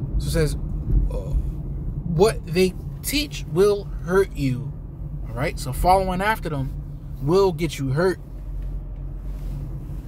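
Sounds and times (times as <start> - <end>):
steady low rumble: 0.0 - 10.0
man speaking: 2.0 - 4.7, 5.3 - 8.2.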